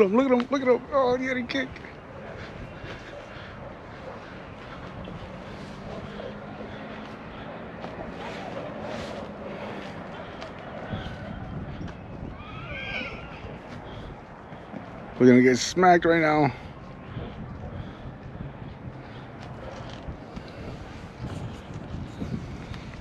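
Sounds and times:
rising and falling call: 12.2s - 13.7s.

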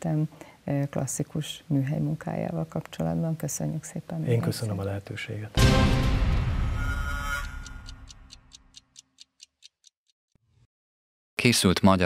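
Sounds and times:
faint clock-like ticks: 7.4s - 10.1s.

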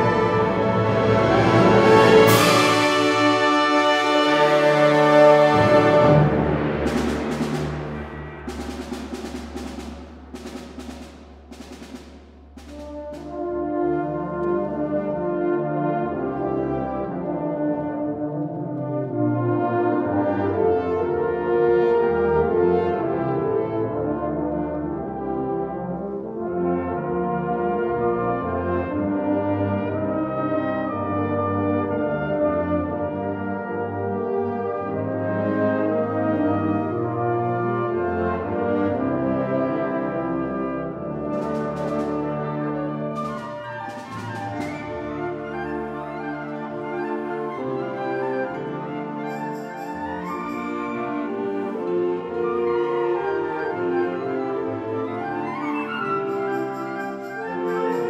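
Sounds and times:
wind band playing: 0.0s - 58.0s
drum strokes: 5.4s - 13.8s, 41.1s - 46.3s.

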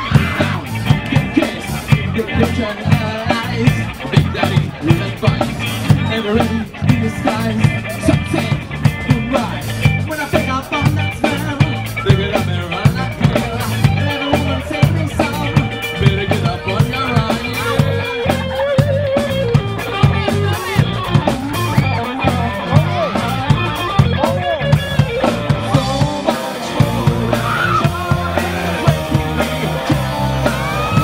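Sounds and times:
drum kit steady beat: 0.0s - 31.0s
electric bass: 0.0s - 31.0s
electric guitar with bent notes: 0.0s - 31.0s.

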